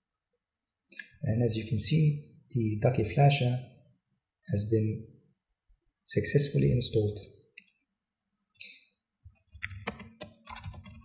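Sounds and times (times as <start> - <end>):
keyboard keys clicking: 9.4 - 11.0.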